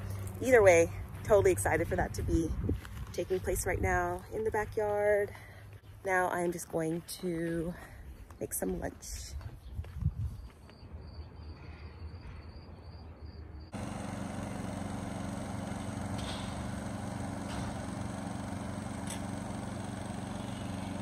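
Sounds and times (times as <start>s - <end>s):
portable generator engine running: 13.7s - 21.0s.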